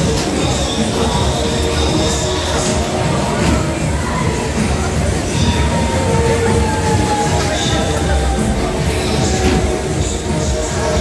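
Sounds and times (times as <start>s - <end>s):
fairground ride machinery rumble: 0.0s - 11.0s.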